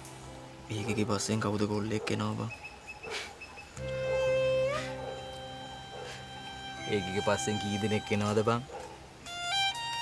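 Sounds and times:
held high music note: 3.8s - 8.7s
person speaking: 5.9s - 8.7s.

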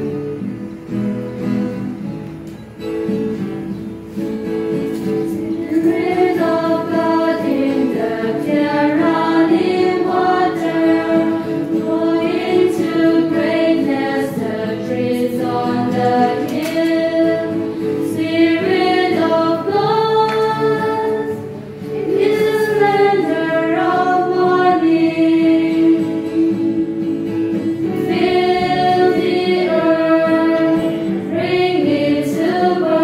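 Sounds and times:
choir singing a hymn: 4.6s - 33.0s.

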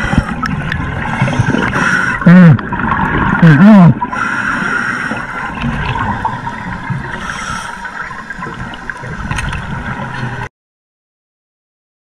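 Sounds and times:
muffled underwater rushing: 0.0s - 10.5s.

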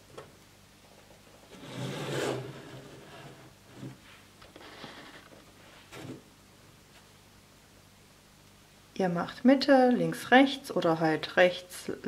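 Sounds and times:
soft rubbing and scraping: 1.4s - 6.3s
plastic rustling scrape: 1.5s - 6.2s.

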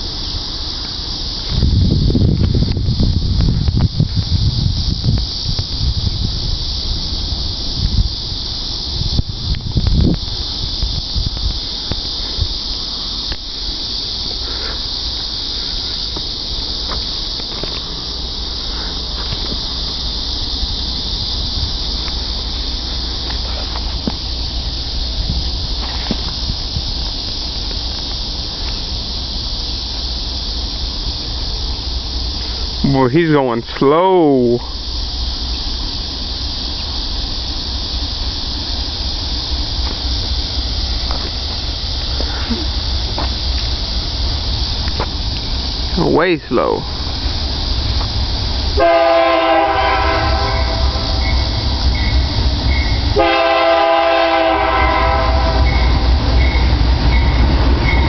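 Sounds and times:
high-pitched insect chorus: 0.0s - 58.0s
wind buffeting microphone: 1.0s - 32.8s.

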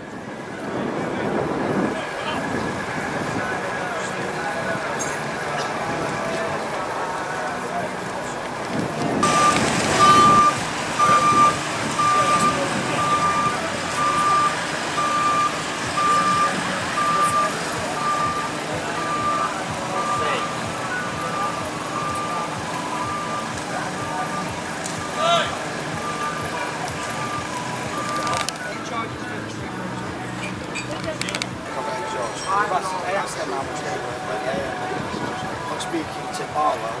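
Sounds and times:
reversing alarm beeping: 9.2s - 29.2s.

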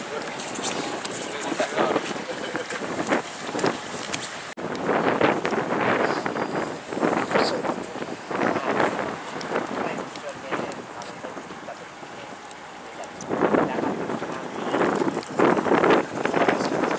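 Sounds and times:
wind noise on microphone: 0.0s - 16.9s
person talking: 7.2s - 15.0s.

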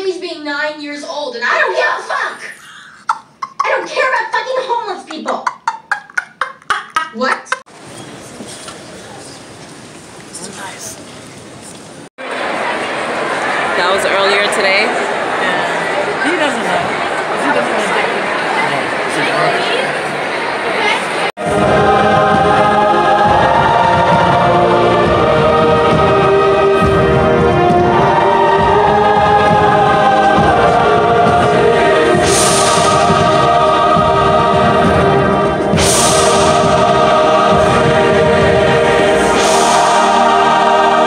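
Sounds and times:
choir singing held chords: 12.2s - 41.0s
orchestral accompaniment: 21.4s - 41.0s.

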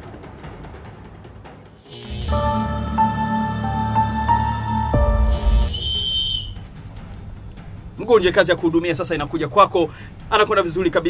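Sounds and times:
music: 0.0s - 11.0s
referee whistle blast: 5.0s - 6.7s.

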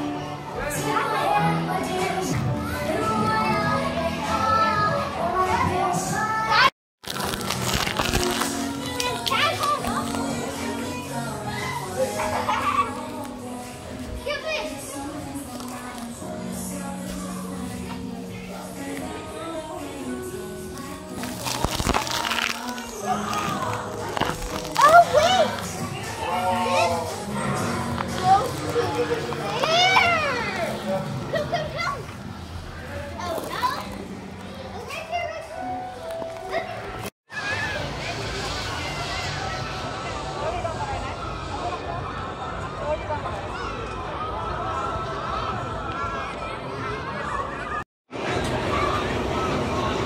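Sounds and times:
background music: 0.0s - 31.9s
children squealing and calling: 9.2s - 13.2s.

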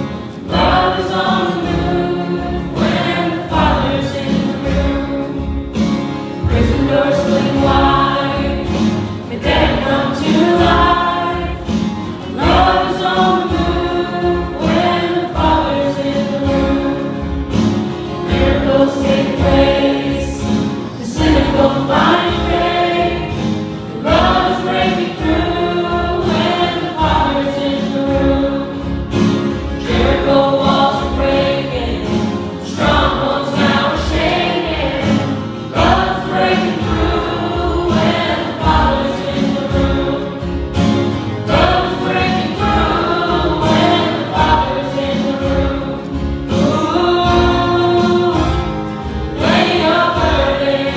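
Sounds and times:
strummed acoustic guitars: 0.0s - 50.9s
voices singing together: 0.0s - 50.9s
worship band playing: 0.0s - 50.9s.

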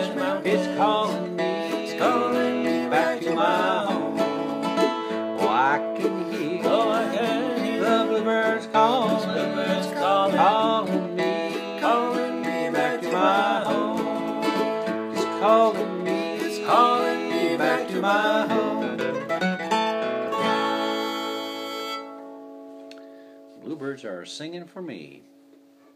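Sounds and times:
bluegrass string band playing: 0.0s - 22.2s.

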